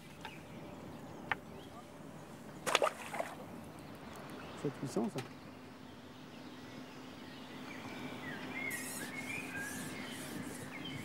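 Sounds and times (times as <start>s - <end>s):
water splashing: 2.6s - 3.5s.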